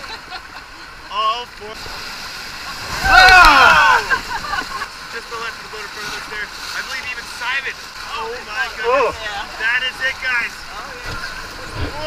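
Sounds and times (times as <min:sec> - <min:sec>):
whitewater rapids rushing: 0:00.4 - 0:12.0
voices yelling together: 0:02.9 - 0:04.2
person shouting: 0:03.0 - 0:04.1.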